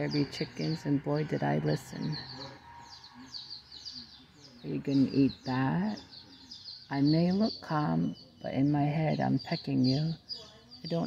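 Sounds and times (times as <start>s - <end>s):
baby chicks peeping: 0.0s - 11.0s.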